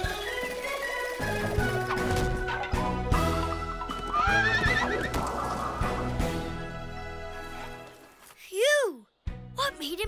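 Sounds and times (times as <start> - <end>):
background music: 0.0 - 10.0
foal whinnying: 4.0 - 5.3.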